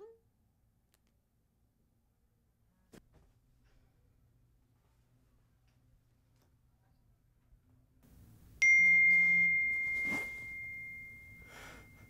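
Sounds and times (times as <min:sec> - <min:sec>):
high bell-like ding: 0:08.6 - 0:12.0.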